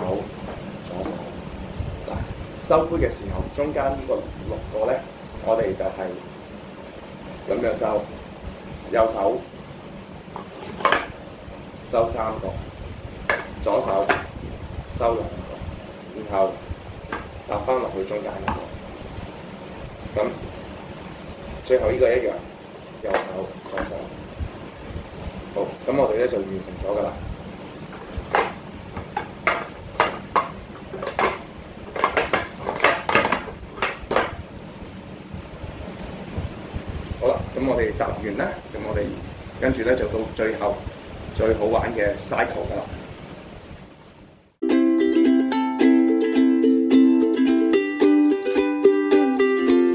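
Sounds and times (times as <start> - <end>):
plastic cups clacking: 28.0 - 34.4.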